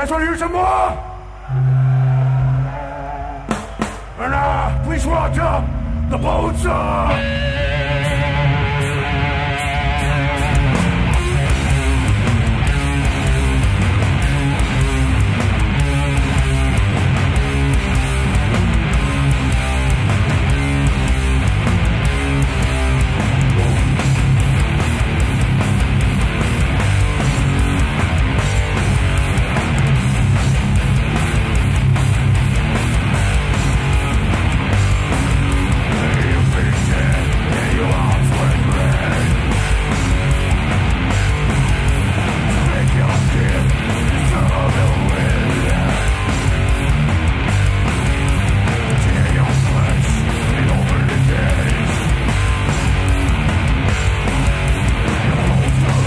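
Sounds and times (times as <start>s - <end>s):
distorted electric guitar: 0.9s - 56.0s
bass guitar: 1.2s - 56.0s
fast drums and cymbals: 3.4s - 5.4s, 10.0s - 56.0s.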